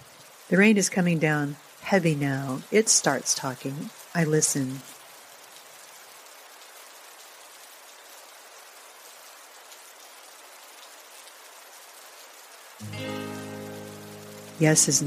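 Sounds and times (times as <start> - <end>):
heavy rain falling: 0.0 - 15.0
music: 12.8 - 15.0.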